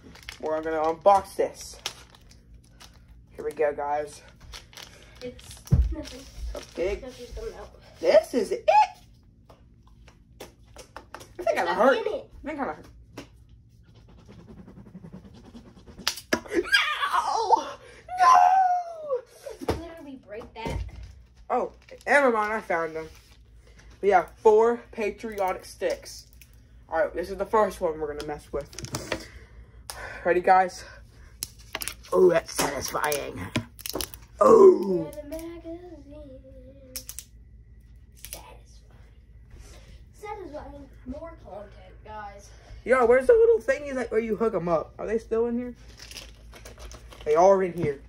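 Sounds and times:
boy yelling and laughing: 16.4 - 19.8, 34.4 - 35.3
person exclaiming: 16.5 - 19.5, 34.4 - 35.2.

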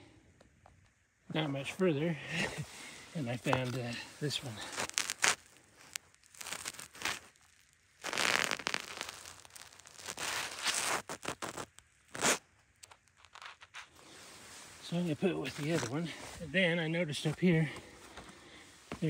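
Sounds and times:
clothing and rock rustling: 2.4 - 19.0.

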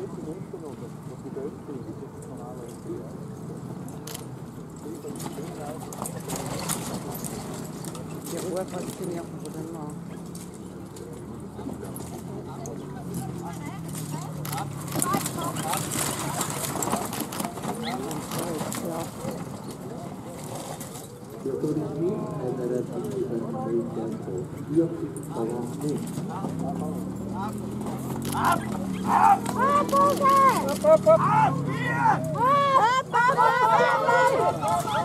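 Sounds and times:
people talking: 0.0 - 3.2, 4.8 - 7.3, 8.2 - 27.6, 28.2 - 35.0
voices in background: 0.0 - 35.0
horse hoofbeats clip-clop: 4.8 - 22.1
horse hoofbeats: 13.3 - 21.0.

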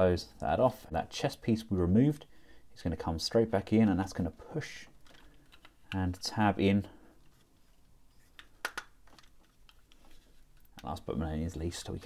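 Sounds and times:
plastic toy parts clicking: 5.0 - 6.0, 8.4 - 10.0.

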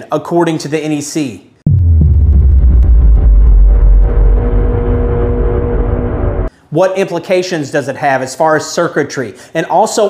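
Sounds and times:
deep bass rumble: 1.7 - 6.5
steady held tone: 1.7 - 6.5.

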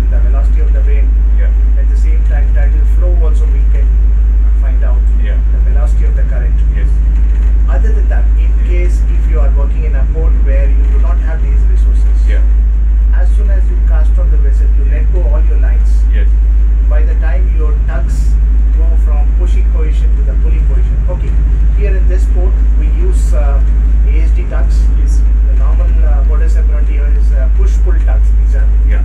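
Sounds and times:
man talking: 0.0 - 7.1, 7.7 - 29.0
boat diesel engine drone: 0.0 - 29.0.

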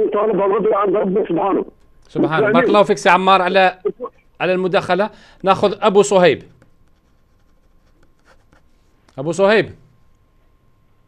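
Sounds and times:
faint scratching: 6.4 - 9.2.

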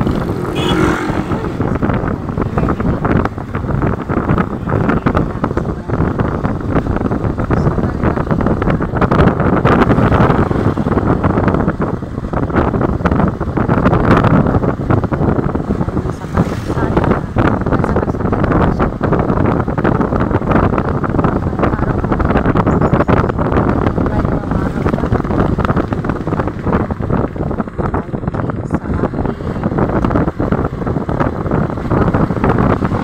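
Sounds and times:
motorcycle engine running: 0.0 - 33.0
wind buffeting microphone: 0.0 - 33.0.

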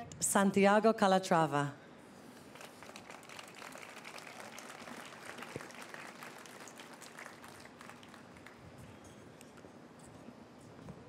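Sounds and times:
audience applauding: 2.5 - 8.7.

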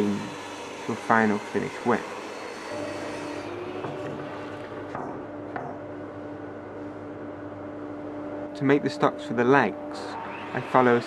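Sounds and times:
table saw motor hum and whine: 0.0 - 11.0.

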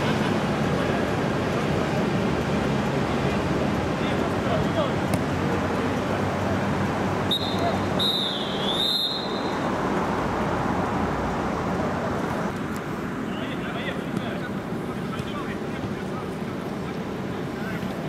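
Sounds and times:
referee's whistle blasts: 7.3 - 9.6.

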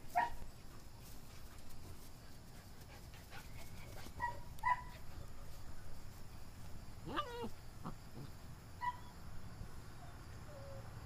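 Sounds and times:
puppy whining yelp: 7.0 - 7.6, 8.8 - 9.2.

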